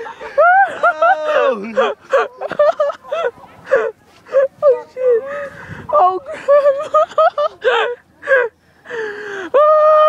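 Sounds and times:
long held shout: 0.3s - 2.4s
person crying out: 0.4s - 2.3s.

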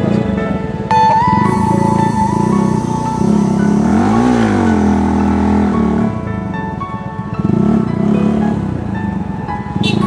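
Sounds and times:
background music: 0.0s - 10.0s
motorcycle engine revving: 0.9s - 6.5s, 7.2s - 10.0s.

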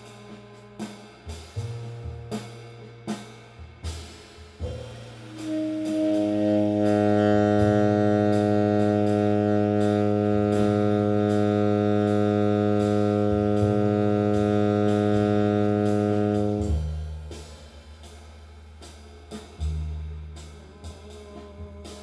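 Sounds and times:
tenor saxophone long tone: 0.0s - 3.1s, 4.6s - 17.2s
bass: 0.0s - 22.0s
swing drums with cymbal strokes: 0.0s - 22.0s.

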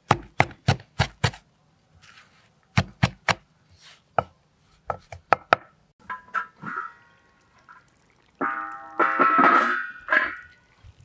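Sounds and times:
metal cookware clanking: 8.4s - 10.6s.

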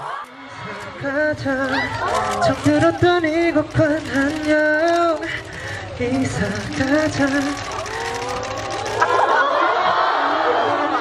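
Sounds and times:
man singing a cappella: 0.6s - 7.9s.

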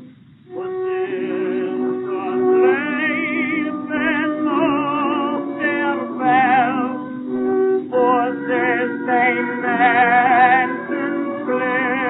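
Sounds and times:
instrumental accompaniment: 0.0s - 12.0s
man singing with vibrato: 0.0s - 12.0s.

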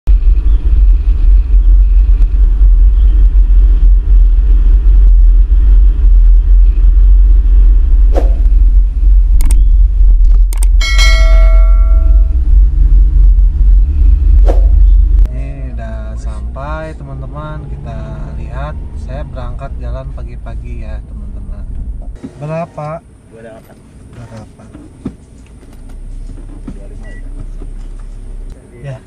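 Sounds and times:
car interior rumble: 0.1s - 29.0s
sharp clicks: 9.4s - 10.8s
ringing chime: 10.8s - 12.4s.

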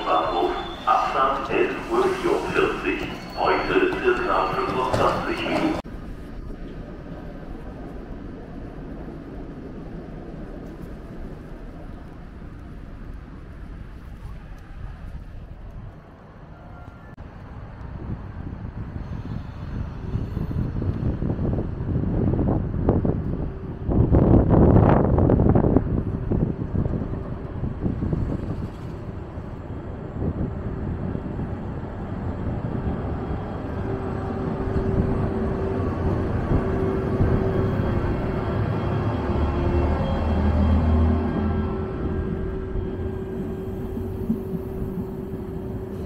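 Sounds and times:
train rumbling: 0.0s - 46.0s.

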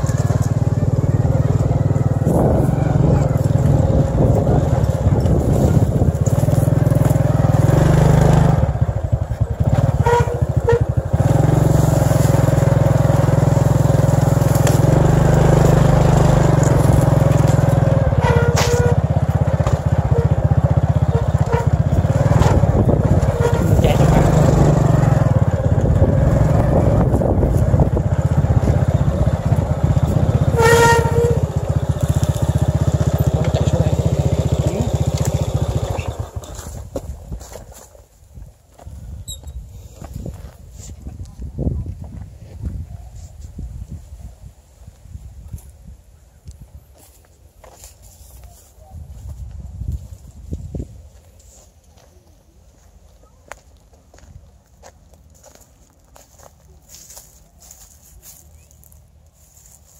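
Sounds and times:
wind buffeting microphone: 1.0s - 7.7s, 21.0s - 30.5s, 38.3s - 47.0s, 48.9s - 51.2s.

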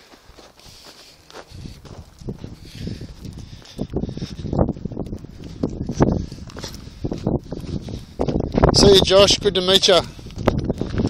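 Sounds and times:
footsteps on dirt and concrete: 0.0s - 11.0s.

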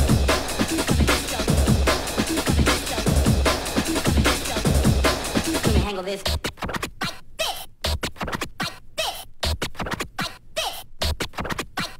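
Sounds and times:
stuttering rave music: 0.0s - 11.9s.

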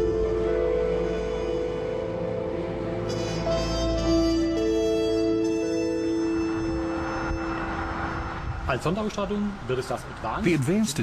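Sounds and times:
background music held notes: 0.0s - 8.7s
passing car whoosh: 6.4s - 10.2s.

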